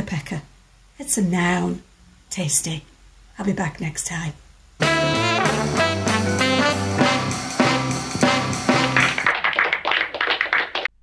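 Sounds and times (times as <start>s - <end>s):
audience applauding: 8.4s - 11.0s.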